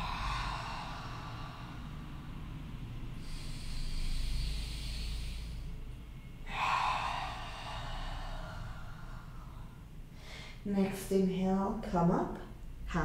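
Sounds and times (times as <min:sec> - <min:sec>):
woman breathing slowly: 0:00.0 - 0:10.7.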